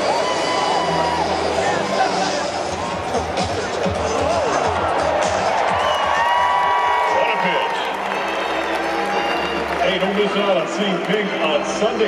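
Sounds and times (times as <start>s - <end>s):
crowd chatter: 0.0s - 6.0s, 7.2s - 12.0s
crowd cheering and applause: 0.0s - 12.0s
music over stadium loudspeakers: 0.0s - 12.0s.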